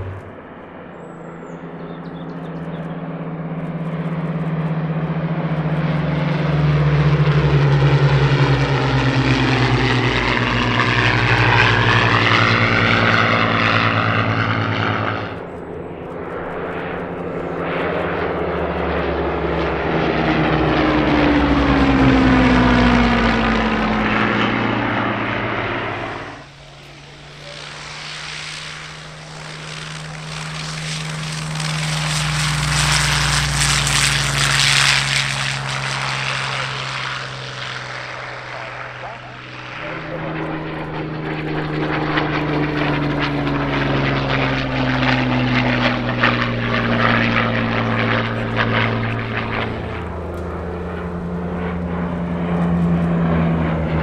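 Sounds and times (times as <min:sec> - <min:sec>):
plane engine running on the ground: 0:00.0 - 0:54.0
propeller fighter planes passing low: 0:00.0 - 0:54.0.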